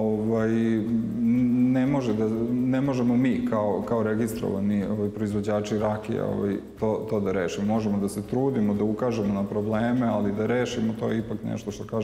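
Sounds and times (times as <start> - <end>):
man humming a hesitation vowel: 0.6 - 3.9.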